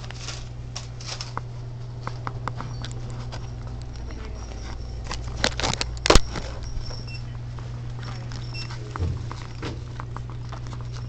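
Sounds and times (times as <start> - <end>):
steady low hum: 0.0 - 11.0
footsteps: 6.3 - 11.0.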